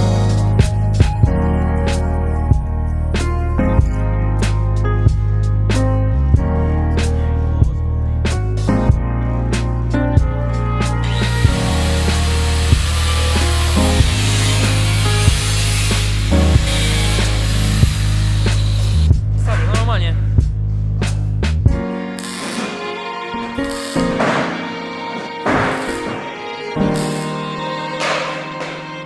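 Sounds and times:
background music with steady beat: 0:00.0 - 0:29.0
angle grinder cutting sheet steel: 0:11.0 - 0:19.1, 0:22.2 - 0:22.8, 0:23.6 - 0:24.5.

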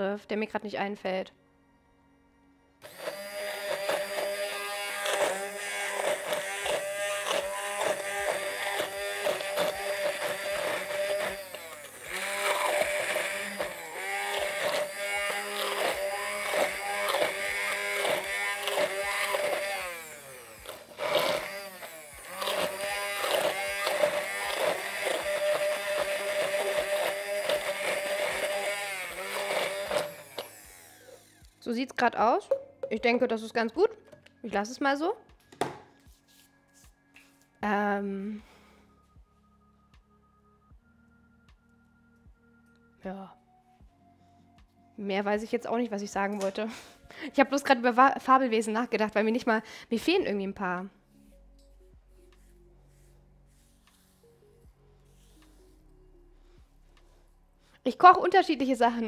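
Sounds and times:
stick blender running: 0:02.8 - 0:31.6.

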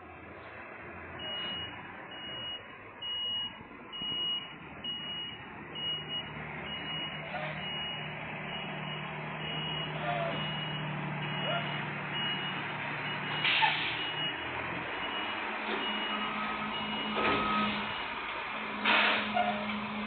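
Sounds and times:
diesel truck engine: 0:00.0 - 0:20.0
truck reversing alarm beeping: 0:01.0 - 0:20.0.

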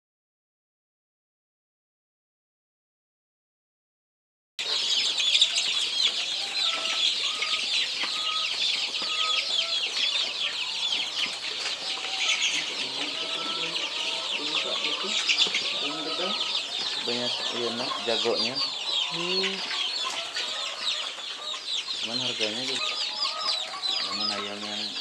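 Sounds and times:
chicks peeping: 0:04.6 - 0:25.0.

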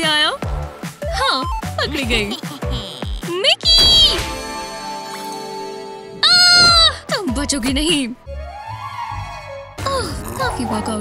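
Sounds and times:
held musical chord: 0:04.2 - 0:06.2.

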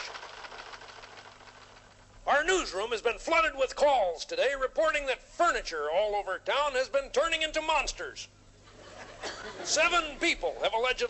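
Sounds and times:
teletype mechanical clatter: 0:00.0 - 0:02.1.

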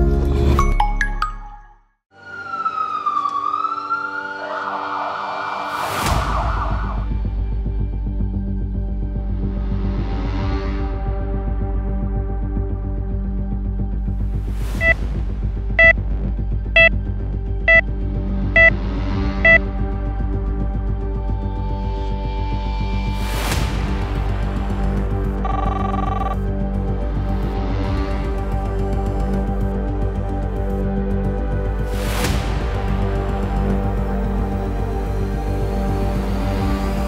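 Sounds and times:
ambulance siren wailing: 0:02.2 - 0:07.1
low throbbing music: 0:06.1 - 0:37.0
heart monitor beeps: 0:17.7 - 0:17.9, 0:18.6 - 0:18.8, 0:25.4 - 0:26.4.

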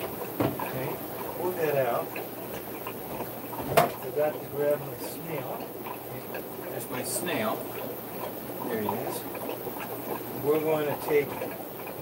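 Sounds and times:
faint steady background noise: 0:00.0 - 0:12.0.

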